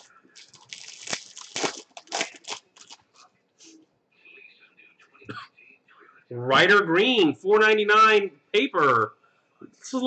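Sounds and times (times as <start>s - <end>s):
plastic foil wrapper crinkling: 0.0s - 3.3s.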